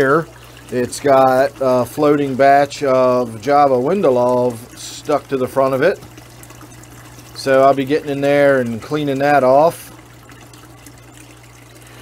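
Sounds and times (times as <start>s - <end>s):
water trickling and splashing: 0.0s - 12.0s.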